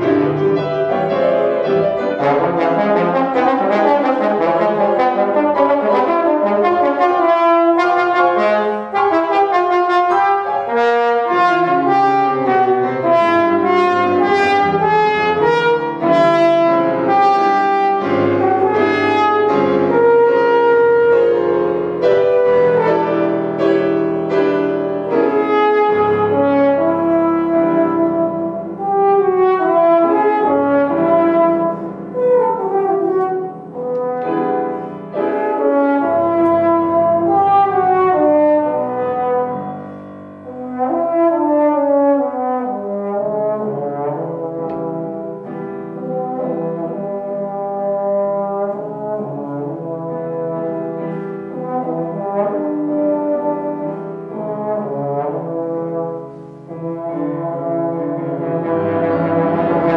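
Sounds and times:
grand piano accompaniment: 0:00.0 - 0:59.9
trombone melody: 0:00.0 - 0:59.9.

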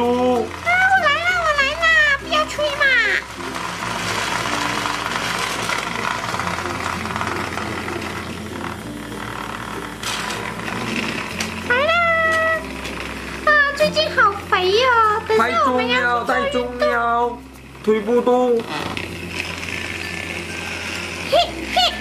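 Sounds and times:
soft background music: 0:00.0 - 0:22.0
toy motor whirring: 0:00.0 - 0:22.0.

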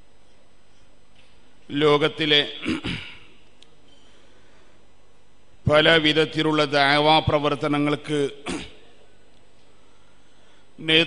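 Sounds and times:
throat clearing: 0:02.6 - 0:03.4, 0:08.4 - 0:09.0.

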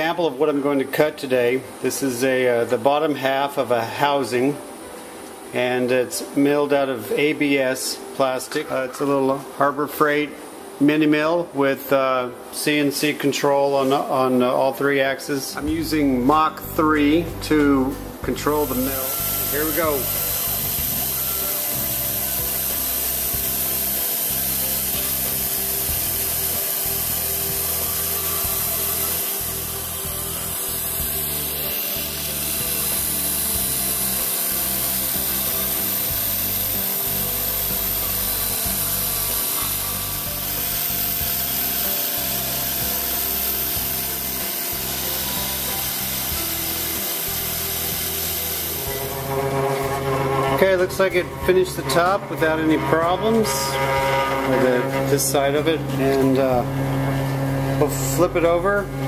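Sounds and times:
milling machine cutting plastic: 0:15.5 - 0:59.0.

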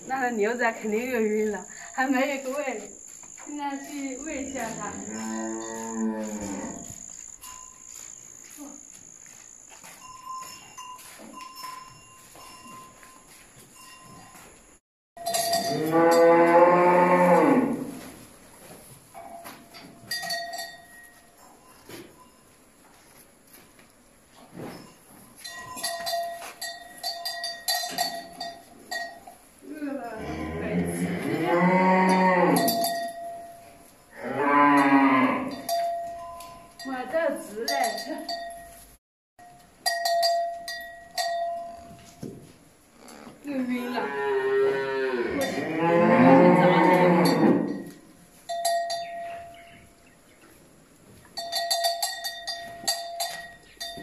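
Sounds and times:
cow bell clinking: 0:06.8 - 0:08.2, 0:09.5 - 0:16.6, 0:19.1 - 0:22.6, 0:24.9 - 0:29.5, 0:32.0 - 0:34.0, 0:34.8 - 0:42.3, 0:47.2 - 0:50.0, 0:51.2 - 0:54.0
cattle mooing loudly: 0:15.7 - 0:17.9, 0:44.0 - 0:47.7.

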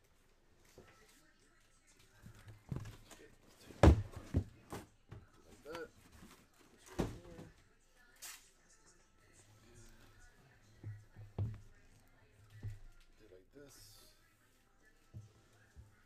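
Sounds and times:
cardboard boxes knocking and thumping: 0:03.7 - 0:04.9, 0:06.9 - 0:07.5.

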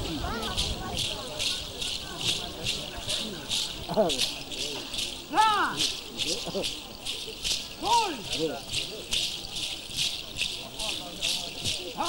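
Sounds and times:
rattles shaken in a beat: 0:00.0 - 0:12.0.

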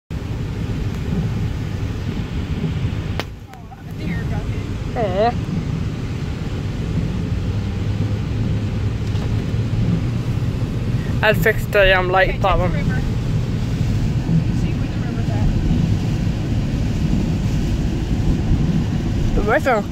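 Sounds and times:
low engine hum: 0:00.1 - 0:19.9
road and rain noise in car: 0:00.1 - 0:19.9.

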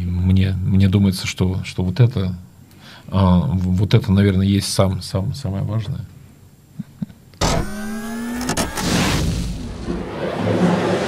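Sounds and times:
rising electronic whine: 0:07.4 - 0:10.9.

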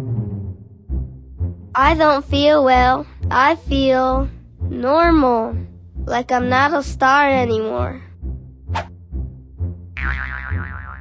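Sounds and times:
cartoon boing sound effect: 0:10.0 - 0:11.0.

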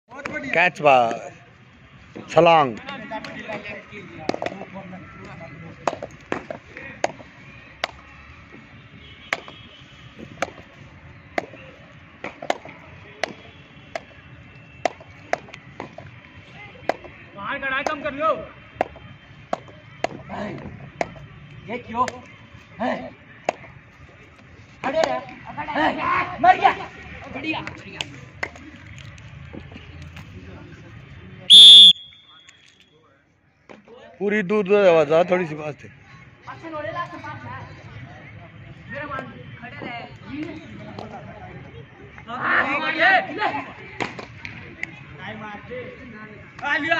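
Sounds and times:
low background murmur: 0:00.1 - 0:46.9
low court background noise: 0:00.1 - 0:46.9
referee's whistle blast: 0:31.5 - 0:32.6.

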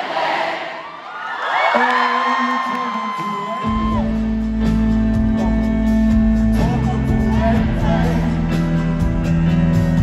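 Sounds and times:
crowd cheering and shouting: 0:00.0 - 0:05.6
live music: 0:01.8 - 0:10.0
deep bass: 0:03.7 - 0:10.0.

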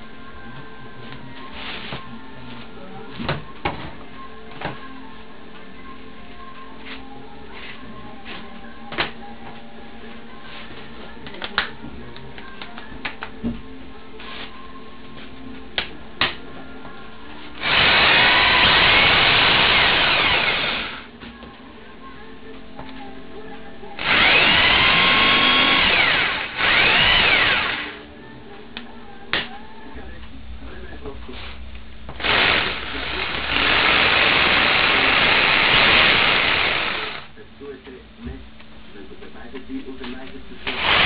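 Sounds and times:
rotary hammer motor running: 0:17.6 - 0:21.1, 0:24.0 - 0:28.0, 0:32.2 - 0:37.3, 0:40.7 - 0:41.0.

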